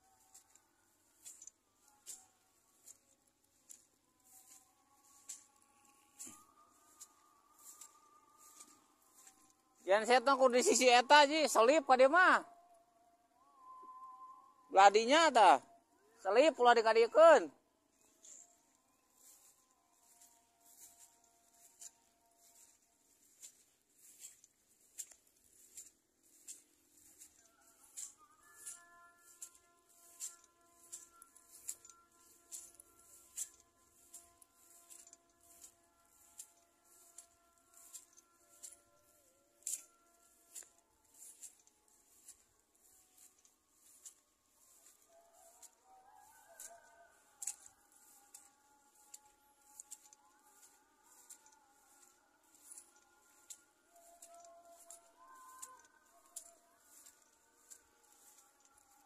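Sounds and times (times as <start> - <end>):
footsteps swishing through wet grass: 0.0 - 11.8, 17.9 - 59.0.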